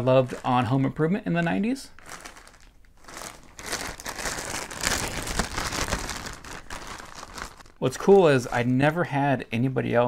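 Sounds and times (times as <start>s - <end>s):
plastic bag crinkling: 0.0s - 8.7s.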